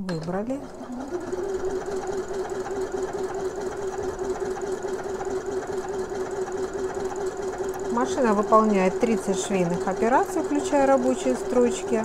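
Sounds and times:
sewing machine stitching: 0.2 - 12.0.

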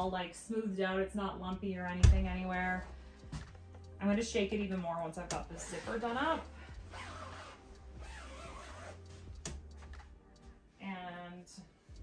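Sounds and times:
quiet background music: 0.0 - 12.0
duvet cover rustling: 5.5 - 10.1.

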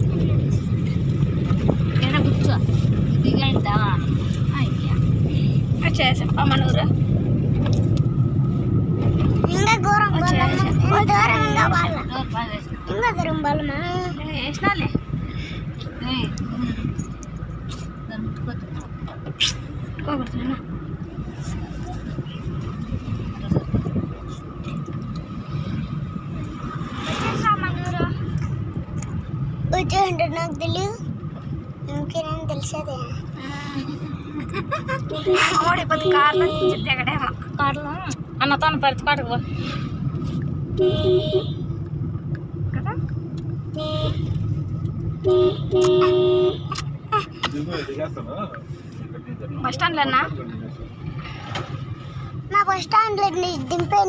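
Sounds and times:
car road and engine rumble: 0.0 - 54.0.

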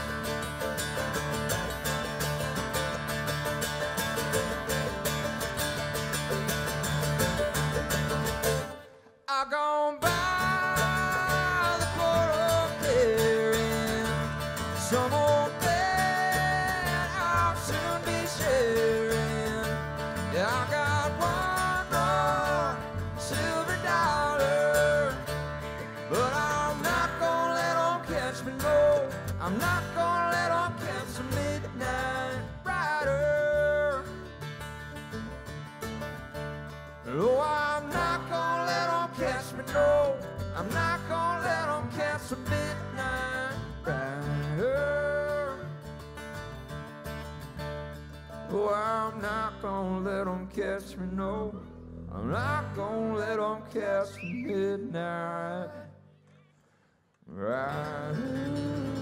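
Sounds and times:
upright bass: 0.0 - 9.0, 10.0 - 54.8, 57.6 - 59.0
banjo: 0.0 - 9.1, 10.0 - 51.4, 57.6 - 59.0
mandolin: 0.0 - 9.2, 10.0 - 54.7, 57.6 - 59.0
acoustic guitar: 0.0 - 59.0
man singing: 9.0 - 34.3, 37.1 - 45.8, 48.5 - 56.0, 57.2 - 59.0.

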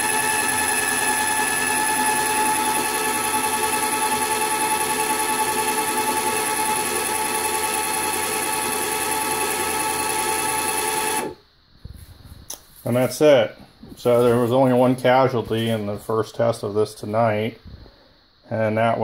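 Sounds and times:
electric motor whining: 0.0 - 11.4.

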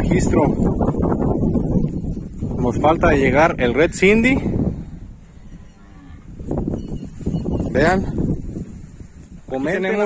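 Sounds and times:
cattle mooing: 5.4 - 6.4.

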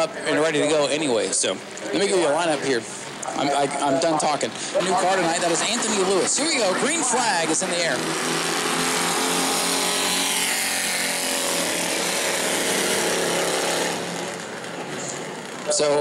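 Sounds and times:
racing car engines at full throttle: 0.0 - 16.0.

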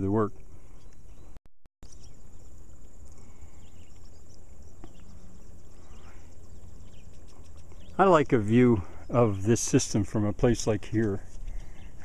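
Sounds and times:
insects chirring: 1.8 - 12.0.

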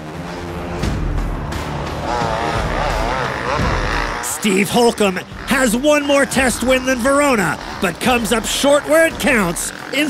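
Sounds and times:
background music: 0.0 - 10.0
dirt bike engine revving: 0.0 - 10.0.

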